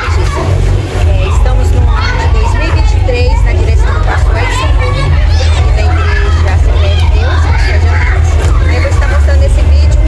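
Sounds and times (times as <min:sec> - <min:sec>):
woman speaking into microphone: 0:01.0 - 0:10.0.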